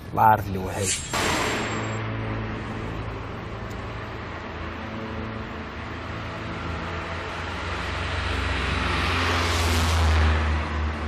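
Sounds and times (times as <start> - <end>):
car driving past: 0.8 - 11.0
low engine hum: 1.5 - 11.0.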